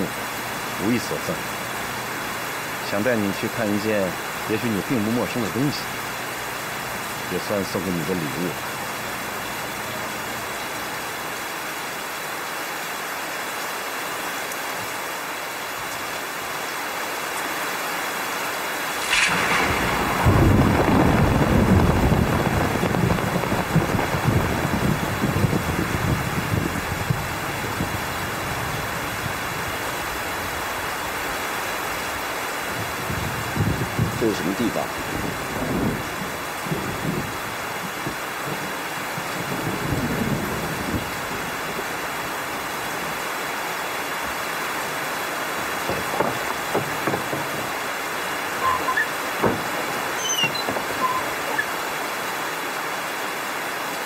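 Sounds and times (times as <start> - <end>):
steady rain: 0.0 - 54.0
thunder rumbling: 18.9 - 27.4, 44.8 - 51.6.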